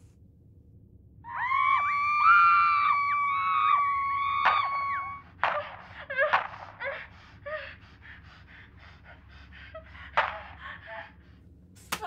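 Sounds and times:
wailing cries: 1.2s - 7.8s
screaming through telephone earpiece: 1.3s - 5.7s.

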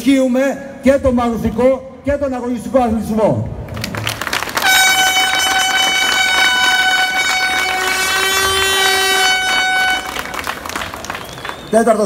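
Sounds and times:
lower horn note: 4.6s - 10.6s
vehicle horn blast: 4.6s - 10.6s.

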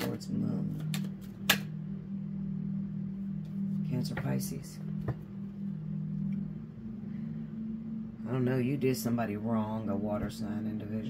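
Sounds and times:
soft low drone music: 0.0s - 11.0s.

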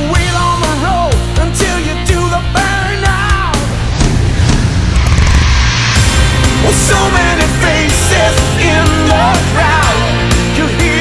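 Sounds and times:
rock song: 0.0s - 11.0s
steady bass: 0.0s - 11.0s.

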